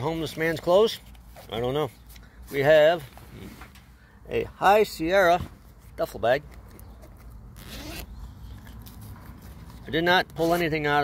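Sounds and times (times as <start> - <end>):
bag zipper pulled open: 7.6 - 8.2.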